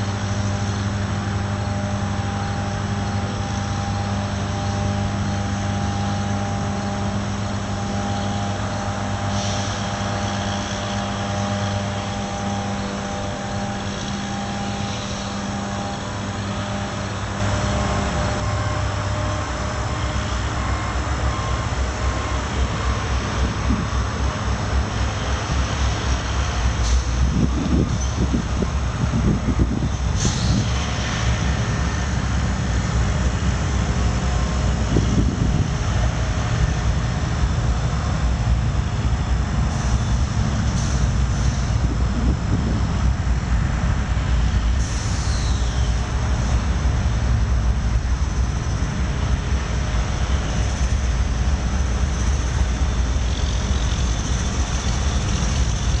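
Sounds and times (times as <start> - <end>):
diesel locomotives passing: 0.0 - 56.0
train wheels on rails: 0.0 - 56.0.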